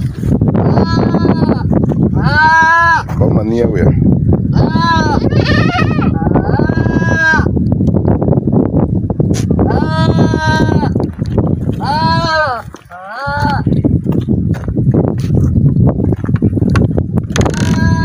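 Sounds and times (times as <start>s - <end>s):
goats bleating: 0.6s - 1.6s, 2.2s - 3.1s, 4.6s - 7.5s, 9.7s - 11.0s, 11.8s - 13.7s.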